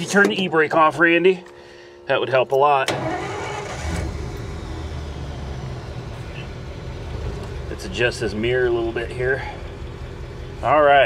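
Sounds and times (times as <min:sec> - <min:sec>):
car engine running at low revs: 0:03.8 - 0:11.0.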